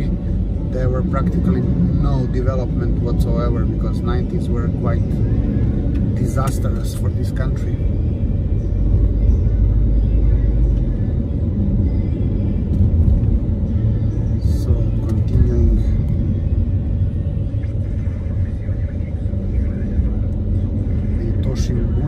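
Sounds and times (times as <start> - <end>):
car engine and tyre rumble: 0.0 - 22.0.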